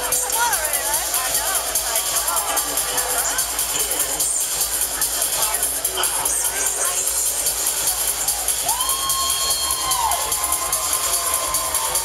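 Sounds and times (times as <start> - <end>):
live pop music over loudspeakers: 0.0 - 12.0
crowd cheering: 7.9 - 12.0.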